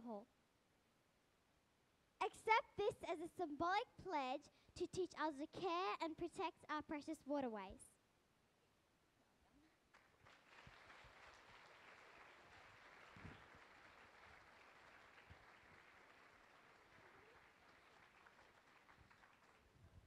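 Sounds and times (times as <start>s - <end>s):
audience applause: 9.9s - 20.0s.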